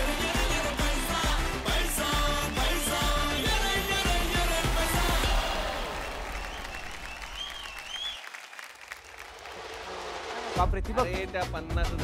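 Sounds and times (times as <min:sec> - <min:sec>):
background music: 0:00.0 - 0:06.3, 0:09.4 - 0:12.0
audience applauding and cheering: 0:00.0 - 0:10.6.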